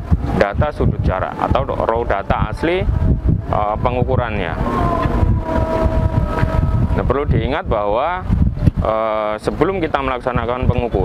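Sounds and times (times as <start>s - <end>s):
faint steady whine: 0.0s - 8.7s
wind buffeting microphone: 0.0s - 11.0s.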